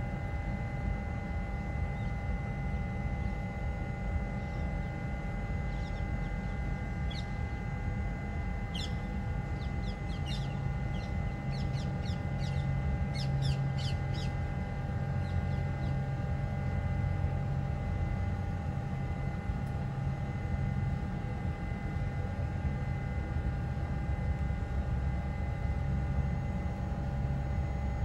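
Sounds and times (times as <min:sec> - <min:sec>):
deeper hum: 0:00.0 - 0:28.0
steady hum with low rumble: 0:00.0 - 0:28.0.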